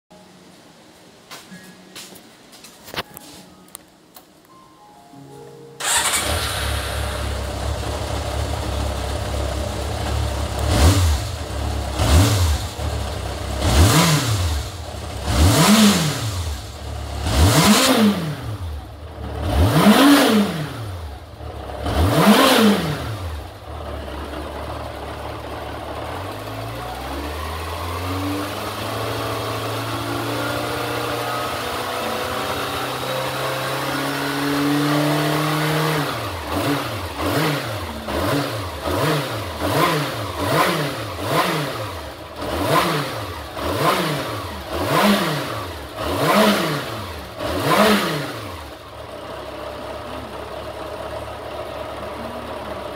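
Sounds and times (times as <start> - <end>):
motorcycle engine revving: 5.8 - 52.9.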